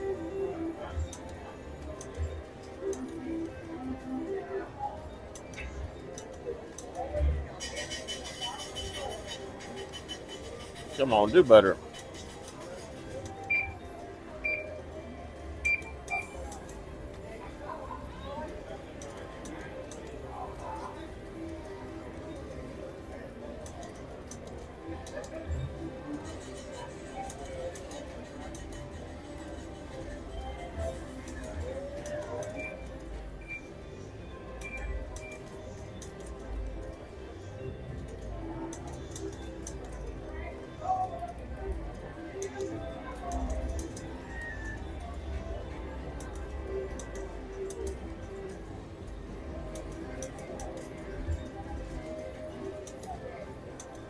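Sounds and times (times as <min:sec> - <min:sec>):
crowd chatter: 0:00.0 - 0:54.0
electronic slot machine tunes: 0:07.4 - 0:54.0
short high beeps: 0:15.6 - 0:16.4.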